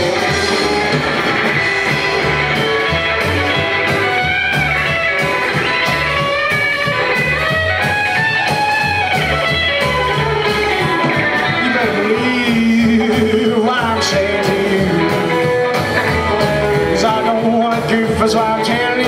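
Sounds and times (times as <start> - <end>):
drums keeping a steady beat: 0.0 - 19.0
electric guitar lead: 0.0 - 19.0
walking upright bass: 0.0 - 19.0.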